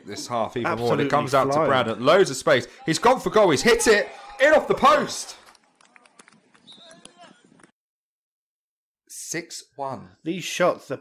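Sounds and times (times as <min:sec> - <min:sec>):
distant players' voices: 0:02.7 - 0:07.7.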